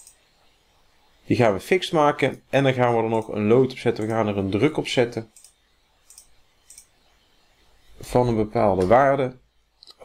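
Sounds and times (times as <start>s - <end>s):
faint computer mouse clicks: 5.4s - 6.9s.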